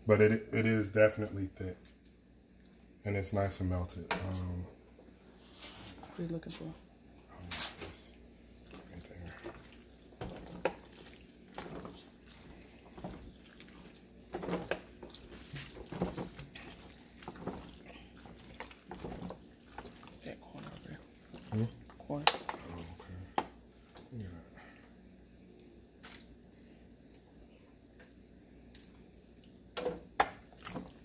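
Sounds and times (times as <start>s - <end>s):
wet pasta squelching: 7.5s - 23.0s, 26.0s - 26.4s, 30.2s - 31.0s.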